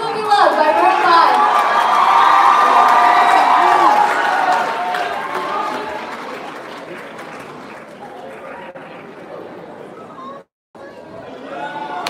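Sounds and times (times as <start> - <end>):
audience applauding: 0.4 - 9.2.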